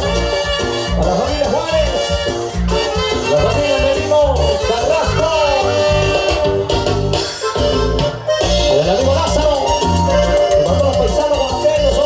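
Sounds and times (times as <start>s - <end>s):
live band playing latin dance music: 0.0s - 12.0s.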